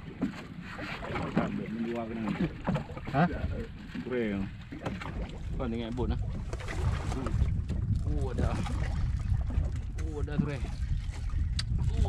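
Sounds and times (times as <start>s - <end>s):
water noise: 0.0s - 12.0s
wind: 0.0s - 12.0s
men speaking: 1.3s - 4.6s, 5.5s - 6.3s, 10.0s - 10.8s.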